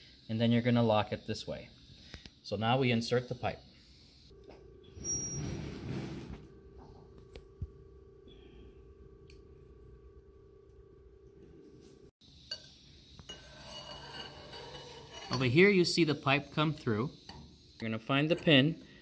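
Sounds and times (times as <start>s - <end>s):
faint steady hum: 6.4s - 19.0s
metal pipe scraping and clinking: 12.5s - 18.8s.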